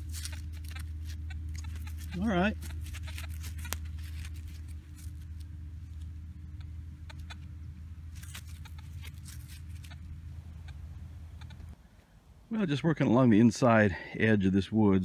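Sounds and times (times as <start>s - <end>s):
faint clicks and crackles: 0.0s - 7.5s
steady low rumble: 0.0s - 15.0s.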